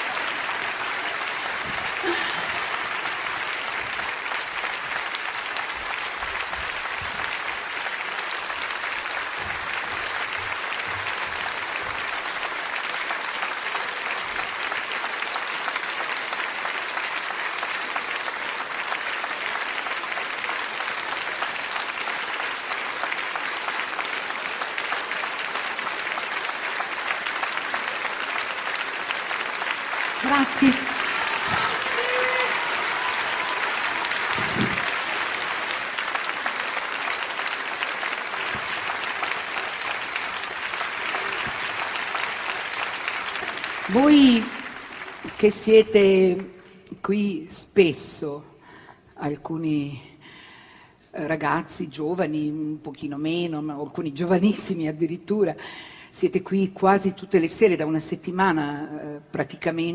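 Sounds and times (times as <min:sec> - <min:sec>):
audience applauding: 0:00.0 - 0:46.7.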